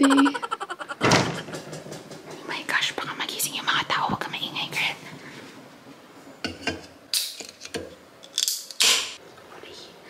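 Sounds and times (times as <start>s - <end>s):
refrigerator door shutting: 1.0s - 2.0s
soft whispering: 2.4s - 5.2s, 9.4s - 10.0s.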